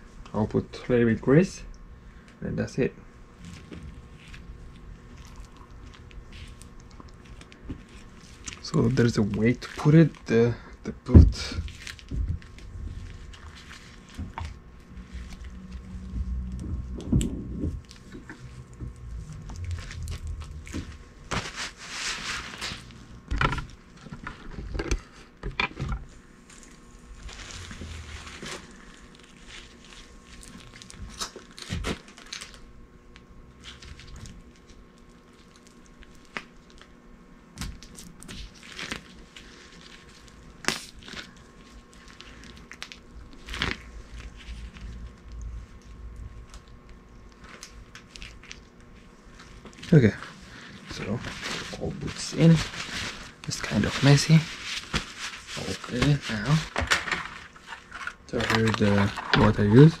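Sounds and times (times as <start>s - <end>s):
rubber rubbing and handling: 11.1s - 25.2s, 26.0s - 32.1s, 37.8s - 60.0s.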